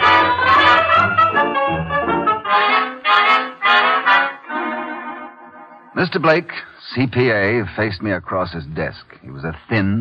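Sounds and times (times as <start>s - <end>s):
brass chords: 0.0s - 6.5s.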